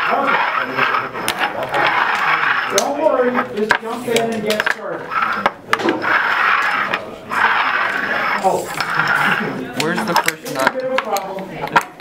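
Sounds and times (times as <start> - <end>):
cups scraping across wooden table: 0.0 - 11.9.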